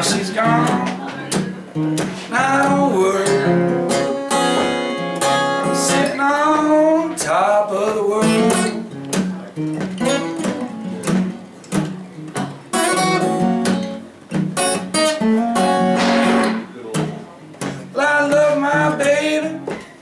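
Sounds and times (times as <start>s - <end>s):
acoustic guitar blues: 0.0s - 20.0s.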